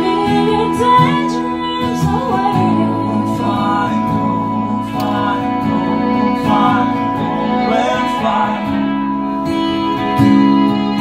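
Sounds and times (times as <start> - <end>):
fiddle holding long notes: 0.0 - 11.0
strummed acoustic guitars: 0.0 - 11.0
voices singing: 0.0 - 11.0.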